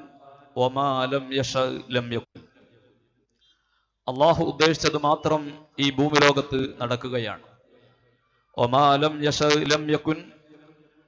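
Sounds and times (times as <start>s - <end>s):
man speaking: 0.0s - 2.3s, 4.1s - 7.4s, 8.6s - 10.3s.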